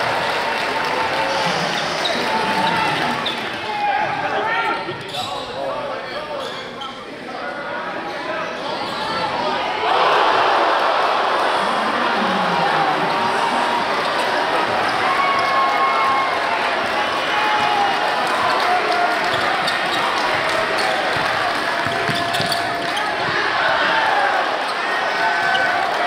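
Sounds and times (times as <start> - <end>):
crowd cheering: 0.0 - 5.0, 9.0 - 26.0
players and spectators calling out: 0.2 - 26.0.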